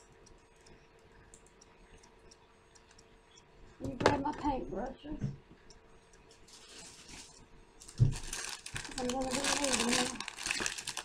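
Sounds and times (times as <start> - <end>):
soft rustling: 6.4 - 11.0
plastic package crinkling: 6.5 - 11.0.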